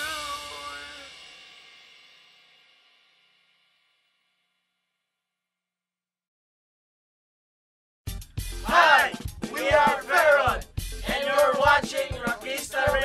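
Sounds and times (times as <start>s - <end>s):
cymbals ringing: 0.0s - 2.8s.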